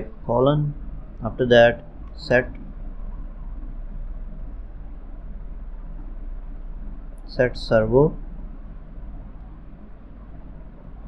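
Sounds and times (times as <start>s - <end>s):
background hiss: 0.0s - 11.0s
low electrical hum: 0.0s - 11.0s.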